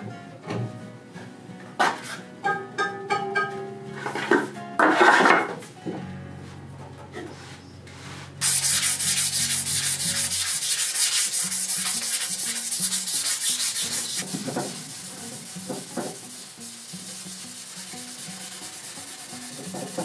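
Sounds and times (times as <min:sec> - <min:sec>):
hand sanding wood: 0:08.4 - 0:20.0.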